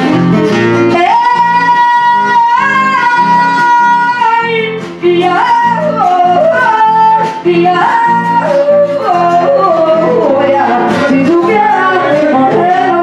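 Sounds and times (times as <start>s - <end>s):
acoustic guitar strummed: 0.0s - 13.0s
woman singing into microphone: 0.8s - 13.0s.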